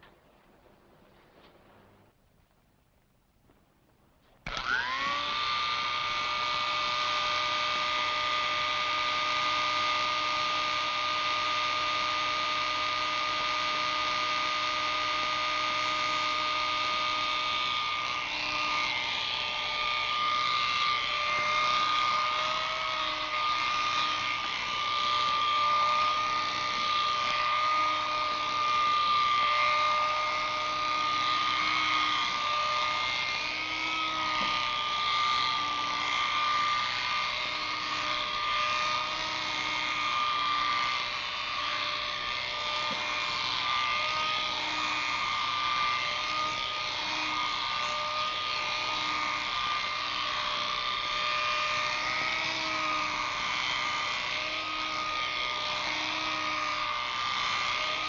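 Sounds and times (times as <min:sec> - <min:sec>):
electric hair clippers humming: 0:04.4 - 0:58.0.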